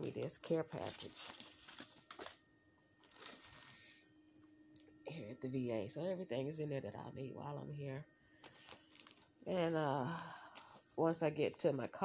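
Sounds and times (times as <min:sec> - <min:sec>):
plastic bag rustle: 0:00.0 - 0:02.4, 0:03.0 - 0:04.0, 0:08.4 - 0:09.4
low steady hum: 0:00.0 - 0:12.0.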